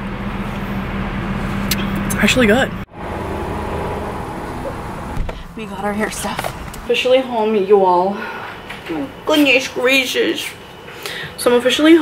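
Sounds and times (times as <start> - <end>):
car engine hum inside cabin: 0.0 - 7.8.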